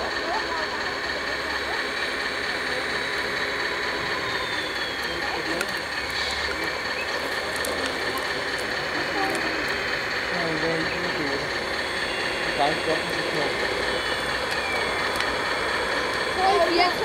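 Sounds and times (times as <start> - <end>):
model excavator motors whirring: 0.0 - 17.0.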